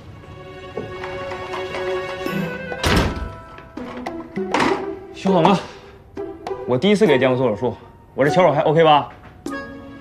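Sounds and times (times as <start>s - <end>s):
light background music: 0.0s - 10.0s
front door thudding shut: 2.8s - 3.4s.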